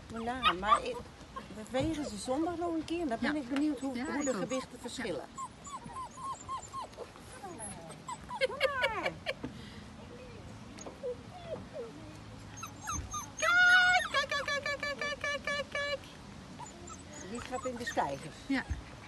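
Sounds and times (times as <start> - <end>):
puppy whimpering and yelping: 3.8 - 8.8, 10.8 - 14.6, 16.6 - 19.0
puppy squealing: 4.0 - 4.7, 5.3 - 8.5, 12.6 - 14.5, 16.6 - 18.9.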